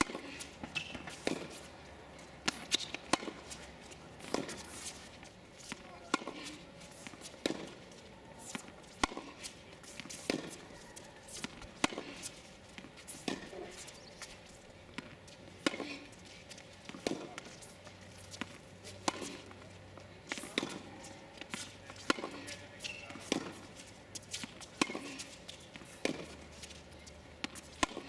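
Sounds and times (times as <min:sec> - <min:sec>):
tennis balls bouncing on court: 0:00.0 - 0:28.0
tennis balls struck by rackets: 0:00.0 - 0:28.0.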